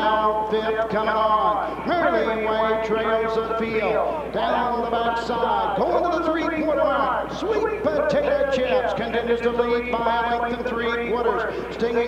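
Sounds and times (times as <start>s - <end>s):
man calling a race: 0.0s - 12.0s.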